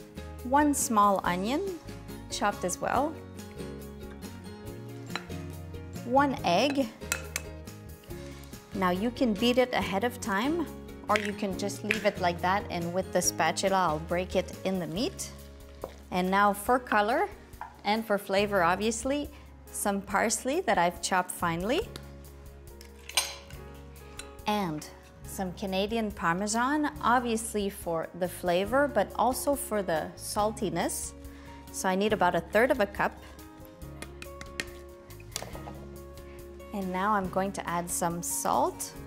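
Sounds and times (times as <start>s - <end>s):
soft background music: 0.0s - 39.0s
glass bowl tapping glass bowl: 6.6s - 7.5s
kitchenware clink: 6.6s - 7.5s, 23.0s - 23.6s.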